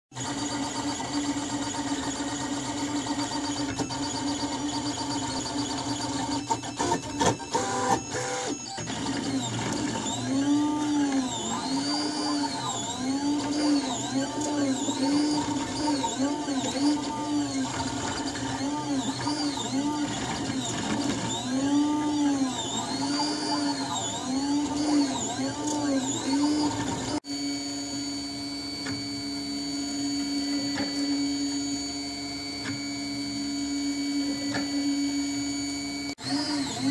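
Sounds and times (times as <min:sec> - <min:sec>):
steady printer hum: 0:00.1 - 0:36.9
stepper motors whining: 0:00.2 - 0:36.9.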